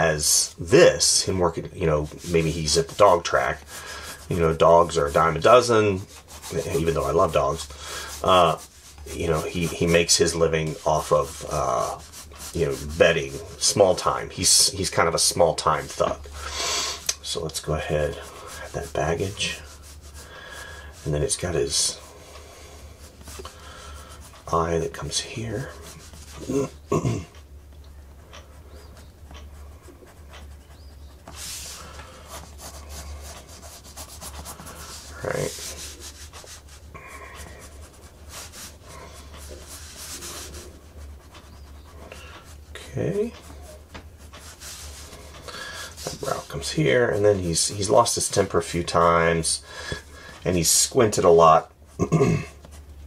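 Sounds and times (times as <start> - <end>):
pencil rubbing on paper: 0.0 - 16.5, 17.2 - 26.9, 28.3 - 51.0
low steady hum: 0.0 - 53.0.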